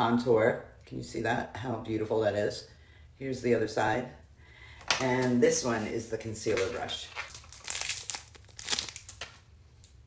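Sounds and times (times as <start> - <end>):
rustling and crinkling: 5.2 - 10.0.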